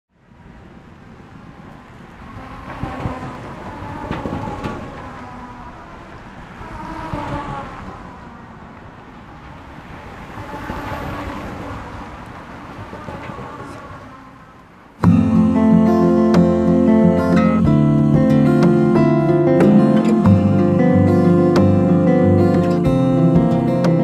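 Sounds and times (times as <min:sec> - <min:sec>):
vehicles passing by: 0:00.2 - 0:24.0.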